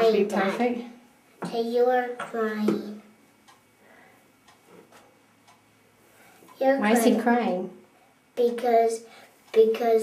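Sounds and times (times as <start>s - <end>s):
faint regular ticks: 4.4s - 5.7s.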